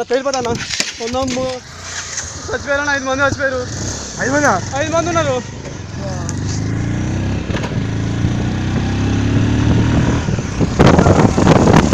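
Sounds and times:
wind buffeting microphone: 0:01.4 - 0:11.9
vehicle engine running: 0:01.5 - 0:11.9.

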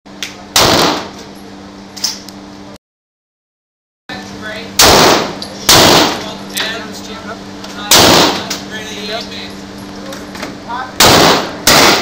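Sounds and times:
steady low hum: 0:00.1 - 0:02.8, 0:04.1 - 0:12.0
pistol shots: 0:00.6 - 0:01.1, 0:04.8 - 0:06.3, 0:07.9 - 0:08.5, 0:11.0 - 0:12.0.

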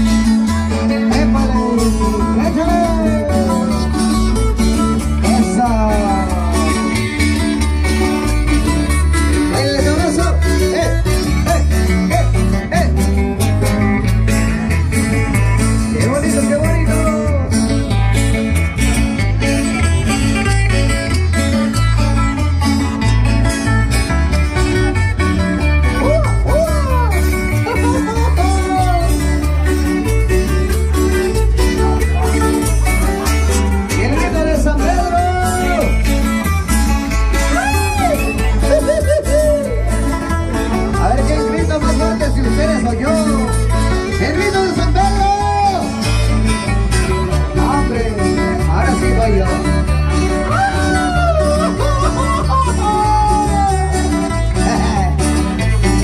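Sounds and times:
guitar: 0:00.0 - 0:56.0
live band playing dance music: 0:00.0 - 0:56.0
steady bass beat: 0:00.0 - 0:56.0.

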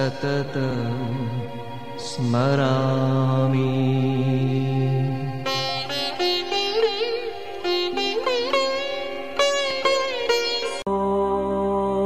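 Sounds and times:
person singing a long note: 0:10.8 - 0:12.0.

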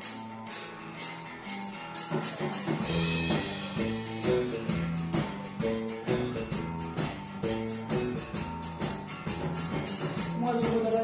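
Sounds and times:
drum kit: 0:00.0 - 0:11.0
guitar: 0:00.0 - 0:11.0
double bass: 0:02.3 - 0:10.6.

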